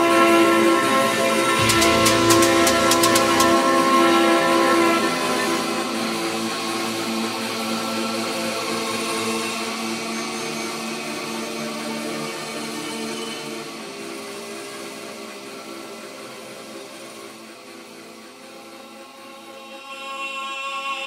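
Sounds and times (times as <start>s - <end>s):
sustained synth tones: 1.6s - 4.2s.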